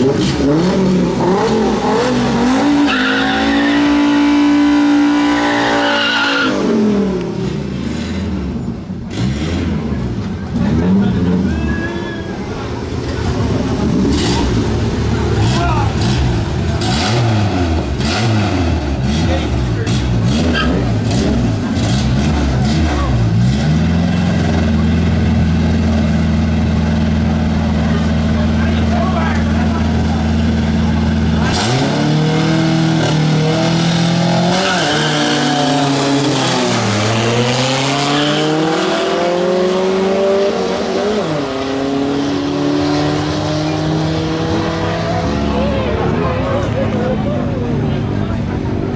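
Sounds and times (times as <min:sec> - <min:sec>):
car engine revving: 0:00.0 - 0:48.9.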